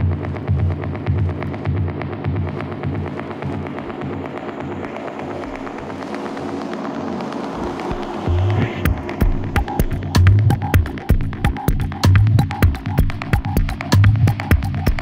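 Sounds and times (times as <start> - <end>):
techno kick drum: 0.0 - 6.0, 7.5 - 15.0
ticking hi-hats: 0.0 - 15.0
steady synth tones: 1.8 - 12.0.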